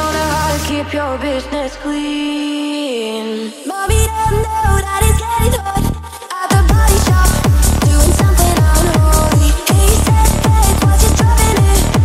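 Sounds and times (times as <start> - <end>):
fast kick drum: 6.5 - 12.0.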